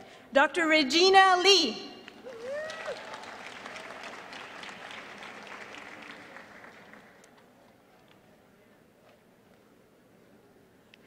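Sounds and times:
person cheering: 2.2s - 3.2s
audience applauding: 2.2s - 7.4s.

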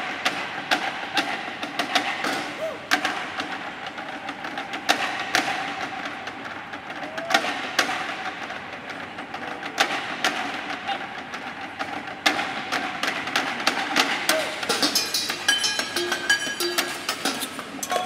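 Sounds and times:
metal pots and bowls struck: 14.7s - 18.0s.

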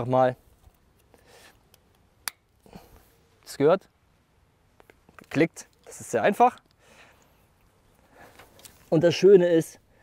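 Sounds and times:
cable handling: 7.6s - 9.0s.

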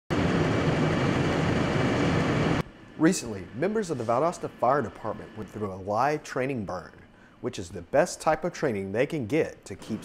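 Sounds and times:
fire roaring: 0.1s - 6.2s
low hum: 0.1s - 7.9s.

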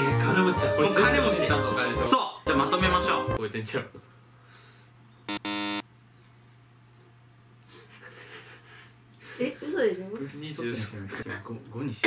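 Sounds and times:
wrong answer buzzer: 5.3s - 5.8s.

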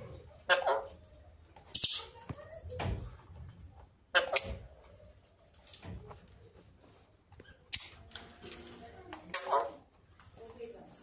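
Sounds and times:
parakeets calling: 4.2s - 4.8s.

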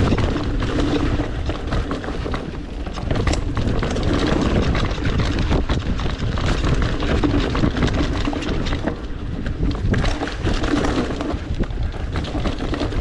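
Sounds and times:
bike clicks and clatters: 0.0s - 13.0s
bike tyres rumbling over dirt: 0.0s - 13.0s.

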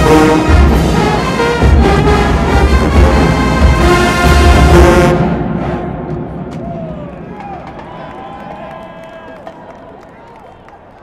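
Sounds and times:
crowd shouting and cheering: 6.3s - 11.0s
scattered clapping: 6.6s - 11.0s.

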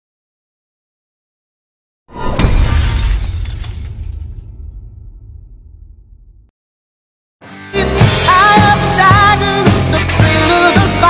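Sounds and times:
glass shattering: 2.2s - 5.0s.

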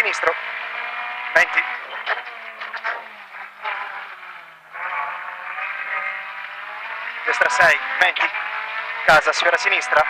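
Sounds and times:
rally car engine revving: 0.0s - 10.0s.

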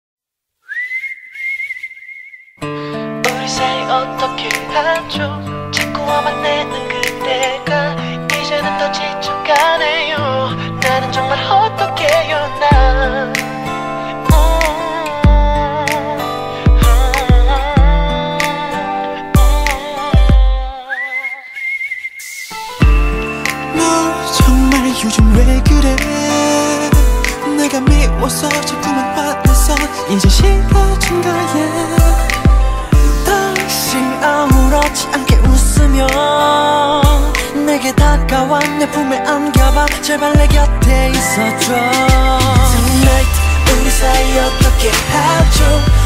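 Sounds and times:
whistled note: 0.6s - 2.6s, 20.9s - 25.0s
pop ballad: 2.6s - 21.6s, 22.5s - 46.0s.

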